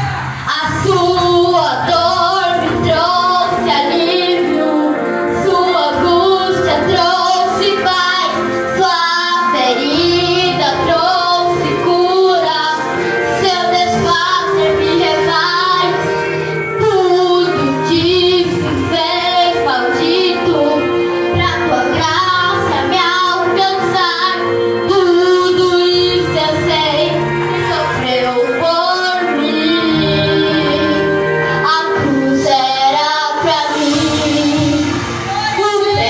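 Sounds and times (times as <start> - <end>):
girl singing through speaker: 0.0 - 36.0
recorded backing track: 0.0 - 36.0.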